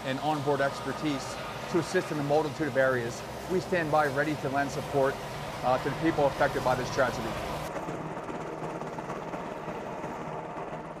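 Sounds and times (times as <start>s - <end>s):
helicopter rotor beat: 0.0s - 11.0s
helicopter turbine whine: 0.0s - 11.0s.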